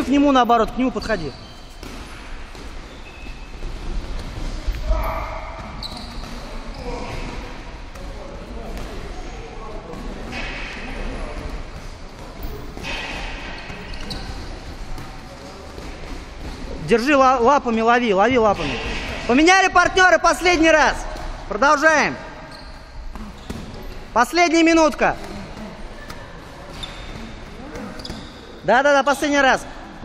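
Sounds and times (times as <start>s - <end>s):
indistinct voices murmuring: 24.8s - 28.6s.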